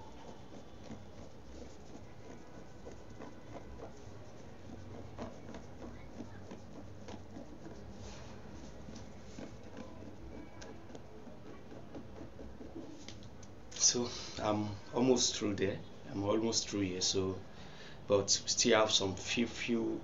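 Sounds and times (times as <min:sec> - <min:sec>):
fingernails scratching fabric print: 0:00.0 - 0:13.3.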